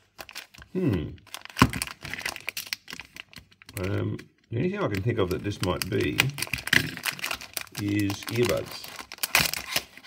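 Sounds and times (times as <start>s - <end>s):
plastic pouch crinkling: 0.0s - 10.0s
sharp plastic crack: 1.4s - 3.9s, 4.9s - 10.0s.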